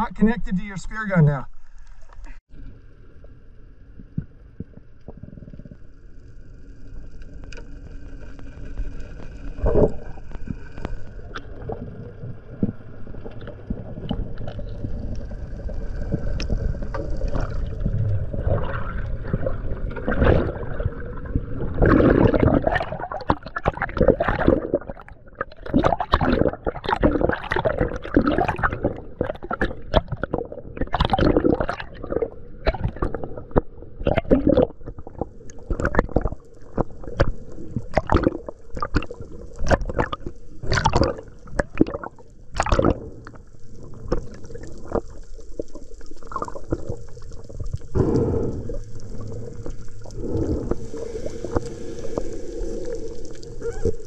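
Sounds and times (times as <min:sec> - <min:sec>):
muffled underwater rumble: 0:01.5 - 0:54.0
splashing and bubbling: 0:08.5 - 0:54.0
faint steady whine: 0:45.4 - 0:54.0.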